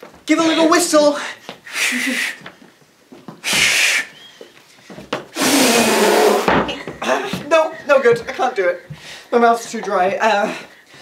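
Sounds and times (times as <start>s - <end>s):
breathy failed whistle: 3.4s - 4.4s.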